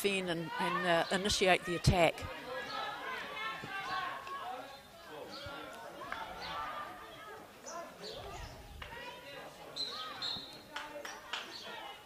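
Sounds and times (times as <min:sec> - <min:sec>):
players calling: 0:00.0 - 0:12.0.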